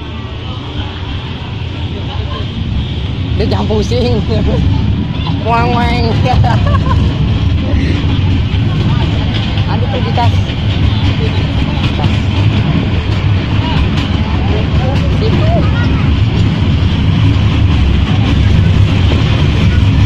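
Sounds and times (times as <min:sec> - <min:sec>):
faint passenger voices: 0:00.0 - 0:20.0
train rumbling: 0:00.0 - 0:20.0.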